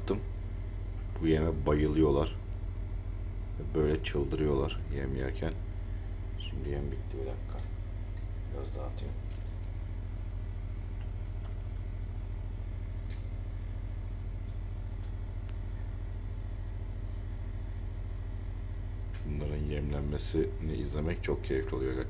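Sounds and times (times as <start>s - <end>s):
aquarium air pump humming: 0.0s - 22.0s.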